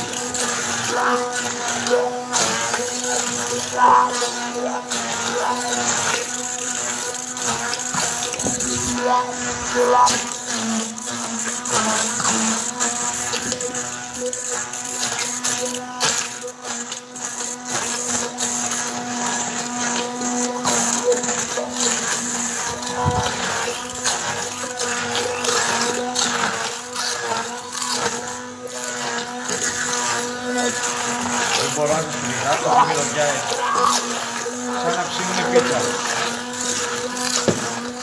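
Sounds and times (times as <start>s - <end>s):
immersion blender running: 0.0s - 38.0s.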